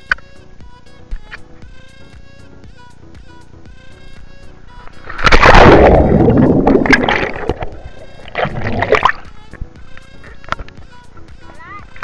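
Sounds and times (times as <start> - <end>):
background music: 0.0 - 12.0
churning water bubbling: 5.1 - 9.3
splash into swimming pool: 5.2 - 7.4.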